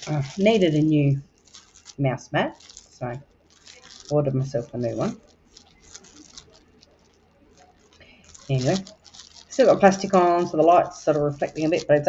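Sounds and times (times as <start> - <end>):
low steady hum: 0.0 - 12.0
plastic wrap crinkling: 0.0 - 12.0.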